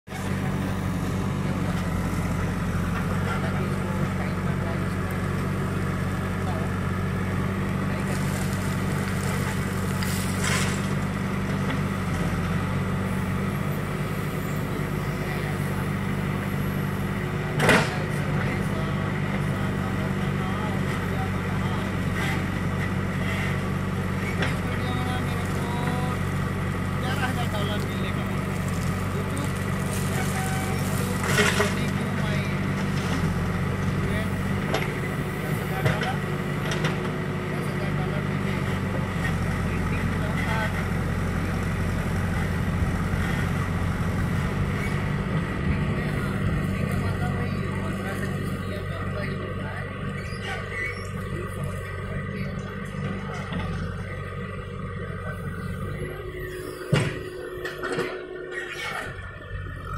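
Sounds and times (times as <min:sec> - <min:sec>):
diesel engine under hydraulic load: 0:00.1 - 0:59.9.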